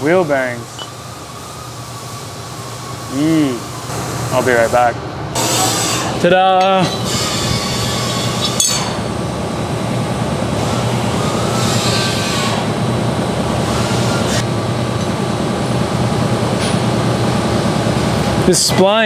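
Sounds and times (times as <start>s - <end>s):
loud mechanical noise: 0.0s - 19.0s.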